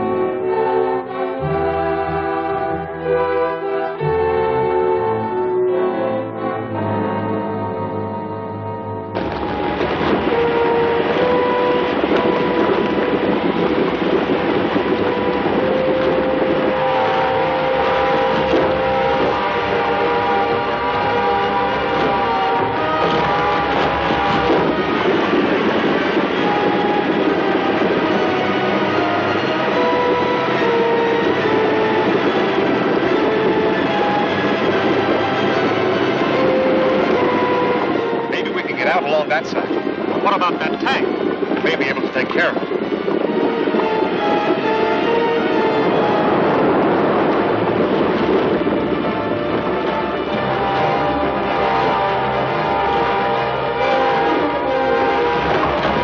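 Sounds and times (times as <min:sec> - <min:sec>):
dramatic orchestral score: 0:00.0 - 0:56.0
loud rushing roar: 0:00.0 - 0:56.0.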